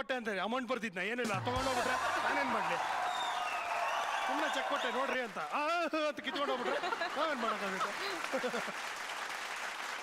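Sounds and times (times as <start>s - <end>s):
audience applauding: 1.6s - 10.0s.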